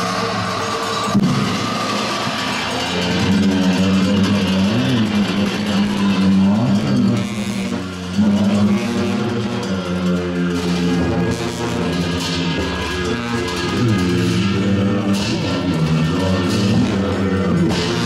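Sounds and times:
clashing cymbals: 0.0s - 18.0s
low droning wind instrument: 0.0s - 18.0s.

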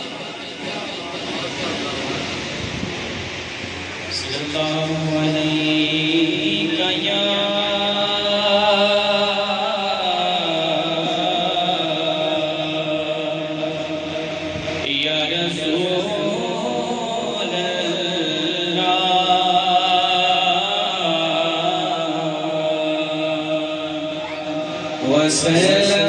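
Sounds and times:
man chanting through a microphone: 4.0s - 26.0s.

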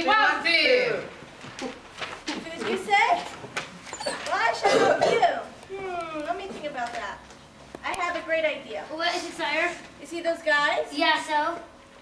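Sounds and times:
indistinct talking: 4.0s - 7.2s.

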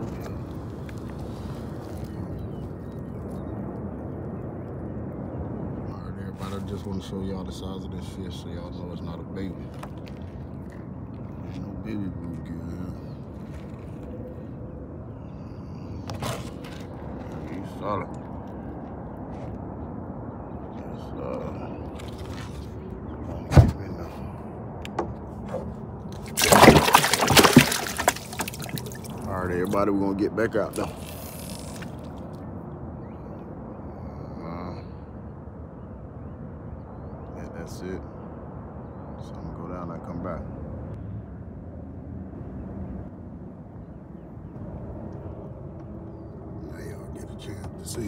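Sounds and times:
wind buffeting microphone: 0.0s - 48.0s
water splashing in a cooler: 26.2s - 29.8s.

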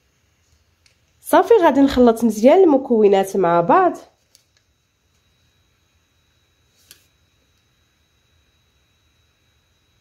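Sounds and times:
thin steady high whine: 0.0s - 10.0s.

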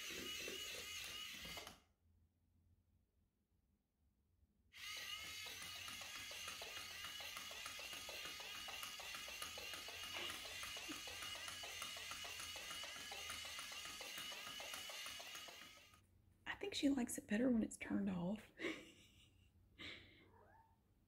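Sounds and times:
toy motor whirring: 0.0s - 1.9s, 4.8s - 16.0s.

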